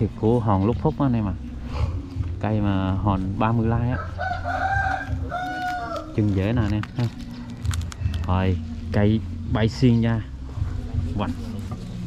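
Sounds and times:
rooster crowing: 0:03.9 - 0:06.2.

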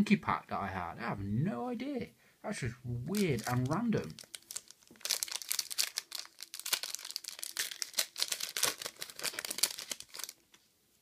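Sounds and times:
plastic wrapper crinkling and tearing: 0:03.1 - 0:10.6.

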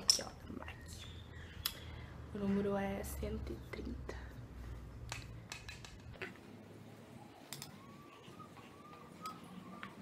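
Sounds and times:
faint wavering tone: 0:07.1 - 0:10.0.

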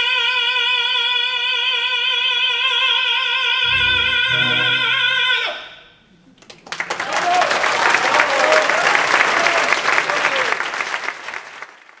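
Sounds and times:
tenor singing: 0:03.6 - 0:06.2
audience applauding: 0:06.4 - 0:12.0.

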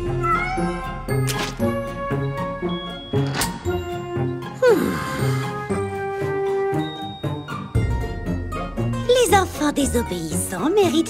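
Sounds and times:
cat meowing: 0:00.0 - 0:01.1
background music: 0:00.0 - 0:11.0.

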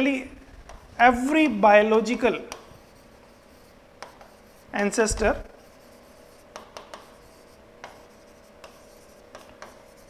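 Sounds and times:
steady low hum: 0:00.0 - 0:10.0
marker pen writing on board: 0:00.5 - 0:01.1, 0:02.2 - 0:10.0.

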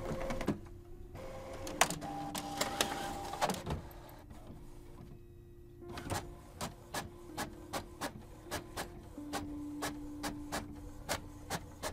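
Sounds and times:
printer motor whirring: 0:00.0 - 0:05.1, 0:05.8 - 0:11.9.

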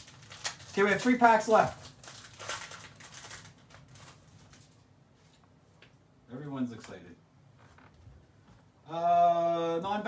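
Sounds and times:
card pack wrapper crinkling: 0:00.0 - 0:04.8.

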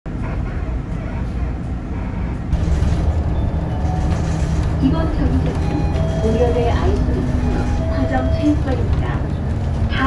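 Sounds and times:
bus engine and road rumble: 0:00.1 - 0:10.0.

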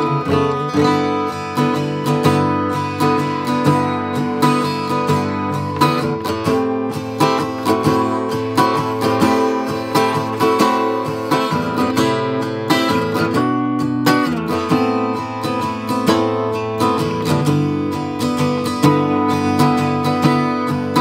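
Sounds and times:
acoustic guitar strummed: 0:00.0 - 0:21.0.

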